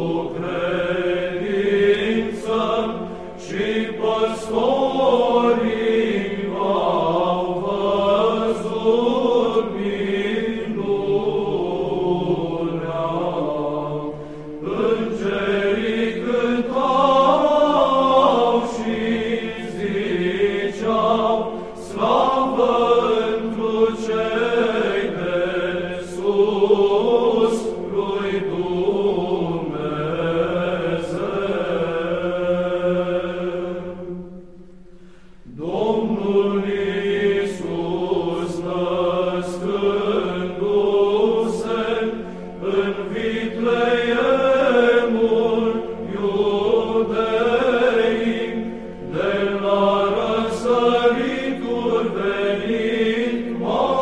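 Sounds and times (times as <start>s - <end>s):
melismatic chant singing: 0.0s - 54.0s.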